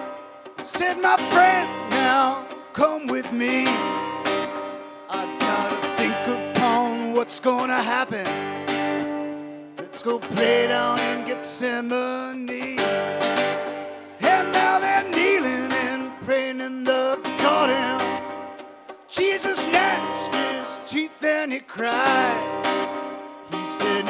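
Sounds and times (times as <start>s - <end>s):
strummed acoustic guitar: 0.0s - 24.0s
man singing: 0.6s - 4.4s, 5.1s - 8.9s, 9.7s - 13.4s, 14.2s - 24.0s.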